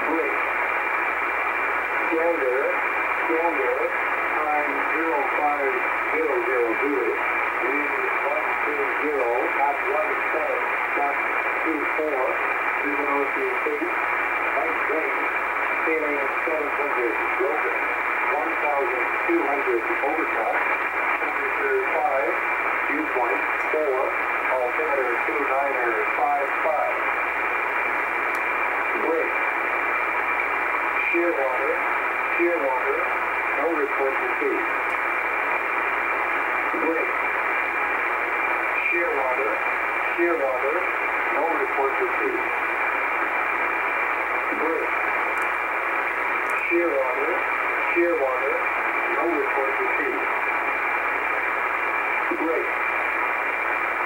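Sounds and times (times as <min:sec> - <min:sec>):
muffled radio voice: 0:00.0 - 0:00.5, 0:02.0 - 0:27.2, 0:28.8 - 0:29.6, 0:31.0 - 0:34.9, 0:36.6 - 0:37.4, 0:38.8 - 0:42.7, 0:44.3 - 0:45.1, 0:46.6 - 0:50.4, 0:52.2 - 0:53.1
static hiss: 0:00.0 - 0:54.0.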